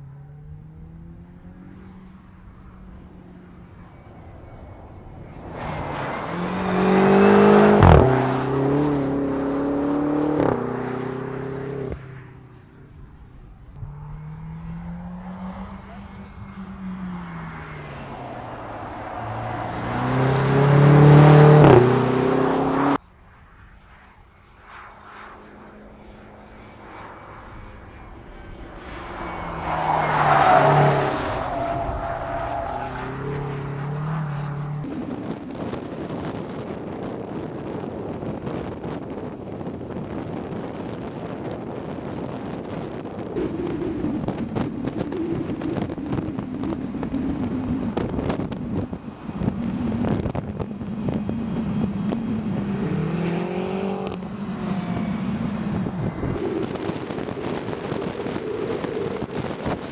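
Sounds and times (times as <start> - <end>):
car engine accelerating hard: 0.2 - 12.2, 13.0 - 23.0, 27.2 - 59.9.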